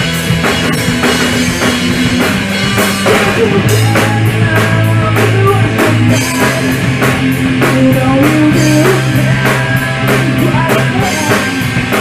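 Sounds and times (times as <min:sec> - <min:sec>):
bass notes: 0:00.0 - 0:12.0
drum kit steady beat: 0:00.0 - 0:12.0
electric guitar: 0:00.0 - 0:12.0.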